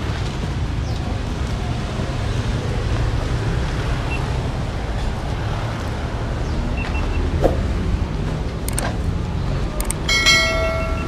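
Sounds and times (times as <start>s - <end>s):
bell-like notification ding: 10.1s - 11.0s.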